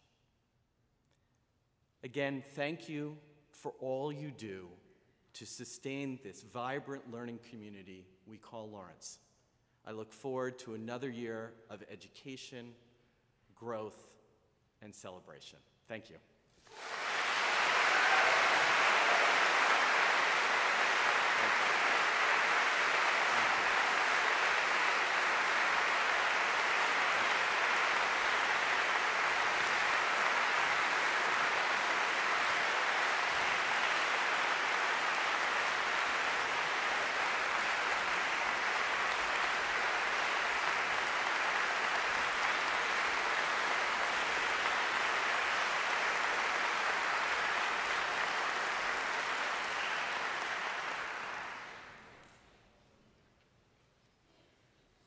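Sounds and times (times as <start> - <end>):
audience applauding: 16.7 - 52.2.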